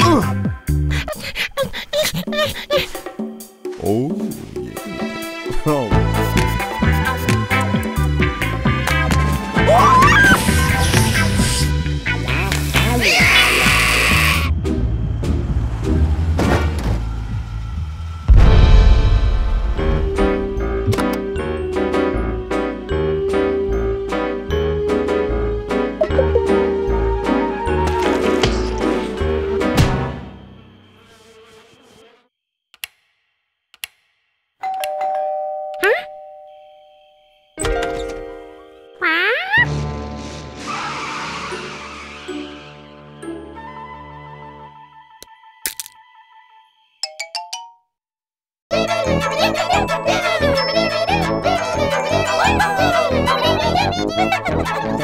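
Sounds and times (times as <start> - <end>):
cartoon background music: 0.0 - 15.4, 18.4 - 30.5, 37.6 - 47.9, 48.7 - 55.0
rising pitch glides: 26.0 - 27.8
doorbell chime: 34.6 - 37.6.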